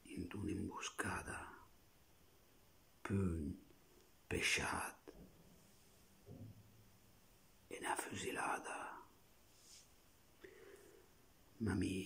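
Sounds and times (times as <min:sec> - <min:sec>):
man whispering: 0:00.0 - 0:01.7, 0:03.0 - 0:05.2, 0:07.7 - 0:09.2, 0:11.6 - 0:12.0.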